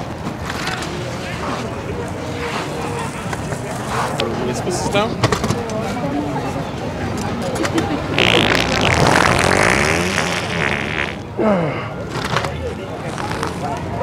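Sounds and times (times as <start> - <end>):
crowd chatter: 0.0 - 14.0
loud wet fart noise: 8.1 - 11.3.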